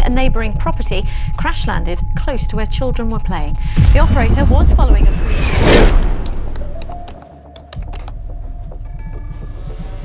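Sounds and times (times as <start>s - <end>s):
keyboard key clicks: 6.5s - 8.1s.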